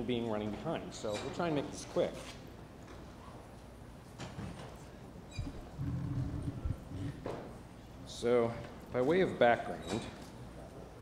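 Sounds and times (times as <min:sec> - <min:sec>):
microphone handling rumble: 0:05.4 - 0:07.3.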